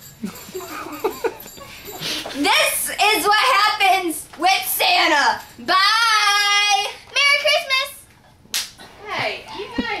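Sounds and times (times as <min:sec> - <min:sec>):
girls talking: 0:02.2 - 0:08.1, 0:08.9 - 0:10.0.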